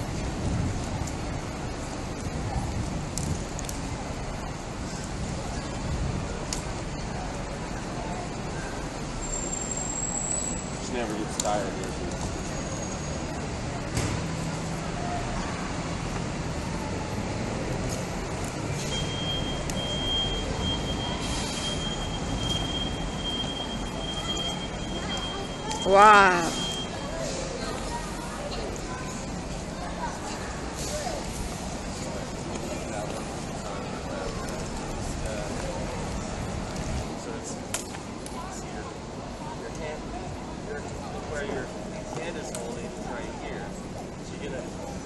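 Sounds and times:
wind rumble on microphone: 0:00.0 - 0:06.9
passers-by: 0:00.0 - 0:45.0
traffic: 0:00.0 - 0:45.0.

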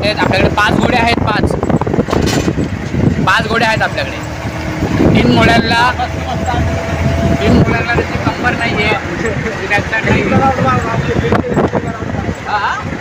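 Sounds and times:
motor vehicle running: 0:00.0 - 0:13.0
voices talking: 0:00.0 - 0:13.0.

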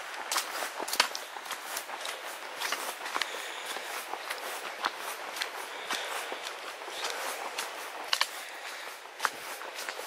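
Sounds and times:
footsteps crunching on gravel: 0:00.0 - 0:10.0.

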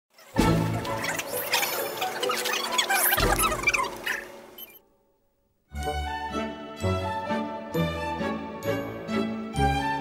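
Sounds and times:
music playing: 0:05.7 - 0:10.0.

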